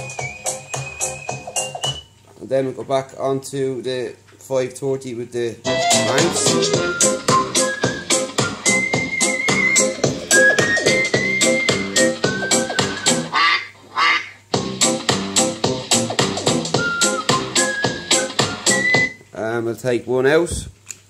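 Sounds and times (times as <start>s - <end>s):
electronic ringtone-style music: 0.0s - 2.0s, 5.7s - 13.3s, 14.6s - 19.1s.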